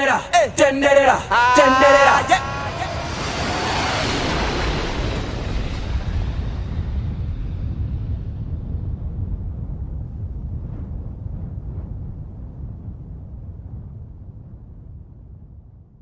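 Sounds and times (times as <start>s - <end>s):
jet airliner passing: 0.0s - 8.6s.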